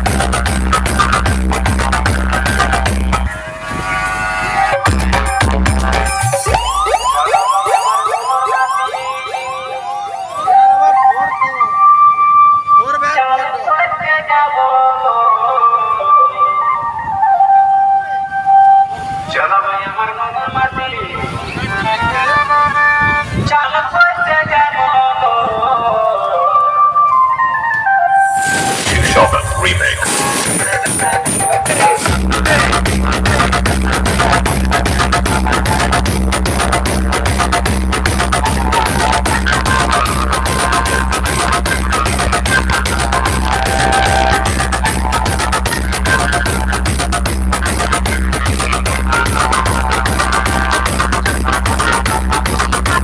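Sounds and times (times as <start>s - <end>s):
loud electronic dance music: 0.0s - 11.7s, 28.2s - 53.0s
wailing synth tones: 2.4s - 13.0s.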